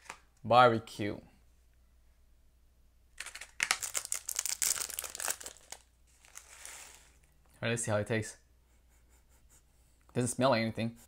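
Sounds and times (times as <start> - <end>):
plastic packet crinkling: 3.2 - 7.2.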